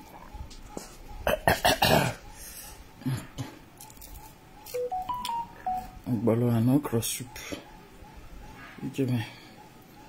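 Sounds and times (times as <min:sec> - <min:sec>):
electronic beep melody: 0:04.6 - 0:06.1.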